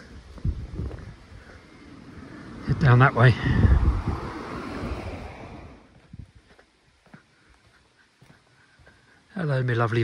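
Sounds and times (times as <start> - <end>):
footsteps on paved road: 0.0 - 2.8, 5.8 - 10.0
wind noise on microphone: 0.0 - 6.6.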